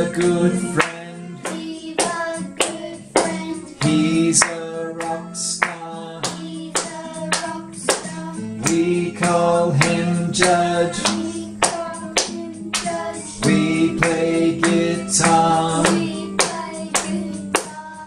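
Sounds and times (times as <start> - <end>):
hands clapping a beat: 0.0 - 18.0
music backing track: 0.0 - 18.0
voices singing children's tune: 0.0 - 18.0.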